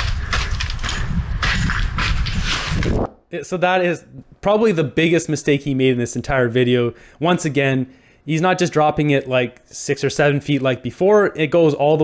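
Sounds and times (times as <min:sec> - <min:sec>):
wind buffeting microphone: 0:00.0 - 0:03.1.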